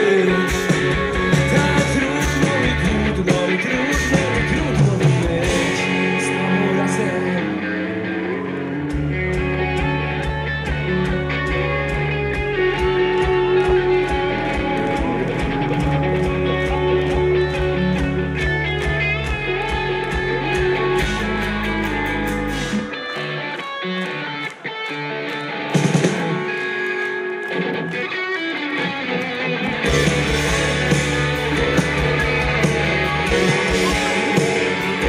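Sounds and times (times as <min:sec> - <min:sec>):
electric guitars: 0:00.0 - 0:35.0
rock band playing: 0:00.0 - 0:35.0.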